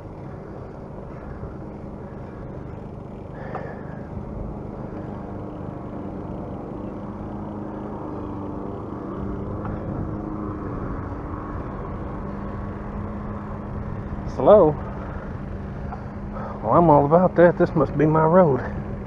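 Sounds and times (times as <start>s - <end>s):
bicycle tyres rolling on asphalt: 0.0s - 19.0s
steady low hum: 0.0s - 19.0s.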